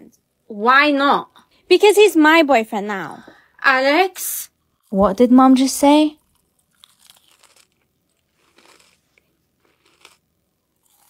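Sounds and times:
jelly candy chewing crunches: 0:06.2 - 0:11.0.

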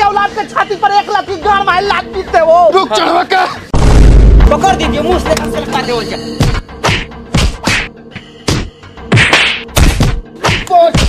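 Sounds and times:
background music: 0:00.0 - 0:11.0
loud slaps and blows: 0:06.8 - 0:11.0.

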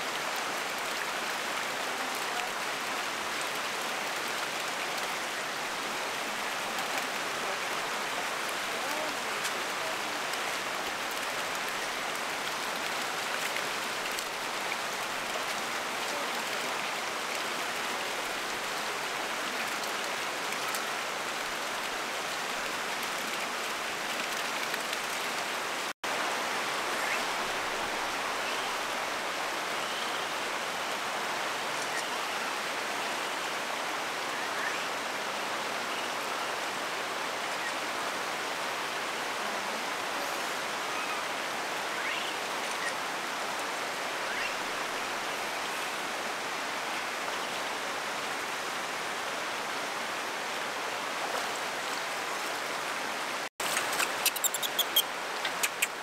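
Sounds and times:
running water rushing: 0:00.0 - 0:56.0.

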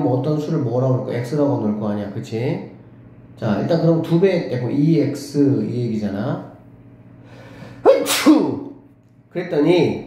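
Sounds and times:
man sneezing: 0:07.8 - 0:08.6.

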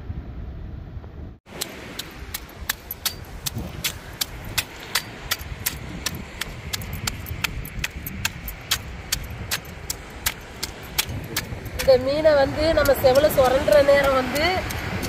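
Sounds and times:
knife scraping fish scales: 0:02.0 - 0:11.9.

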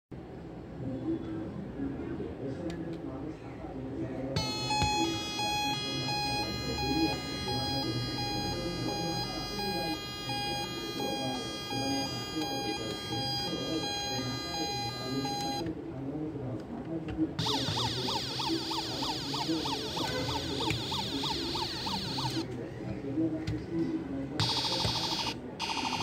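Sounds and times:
toy electronic siren: 0:04.4 - 0:15.6, 0:17.4 - 0:22.5, 0:24.4 - 0:26.0.

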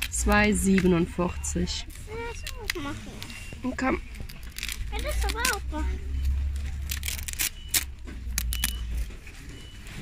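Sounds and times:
child speaking: 0:01.9 - 0:03.3, 0:04.8 - 0:06.1.

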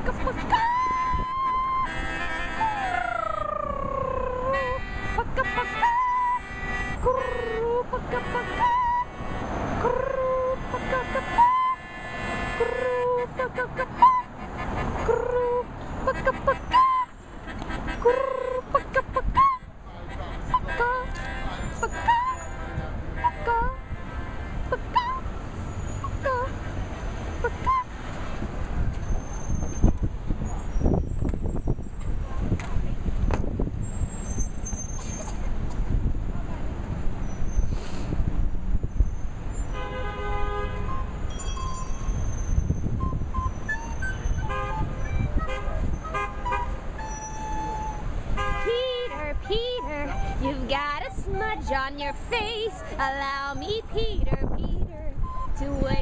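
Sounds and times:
street noise: 0:00.0 - 0:56.0
thin high squeal: 0:33.8 - 0:35.5, 0:41.0 - 0:46.1, 0:47.0 - 0:48.1.

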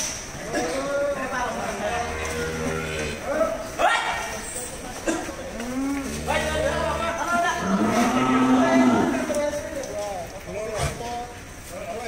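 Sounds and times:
cattle lowing: 0:01.8 - 0:03.3, 0:05.6 - 0:09.3.

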